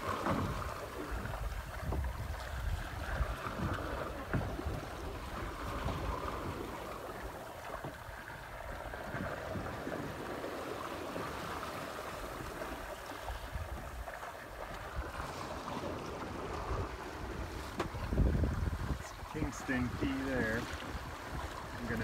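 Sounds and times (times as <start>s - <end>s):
water rushing past hull: 0.0s - 22.0s
wind buffeting microphone: 0.0s - 22.0s.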